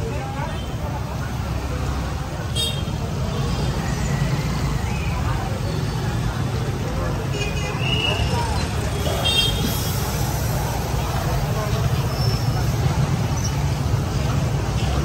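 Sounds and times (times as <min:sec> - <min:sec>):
faint voices: 0:00.0 - 0:15.0
low urban rumble: 0:00.0 - 0:15.0.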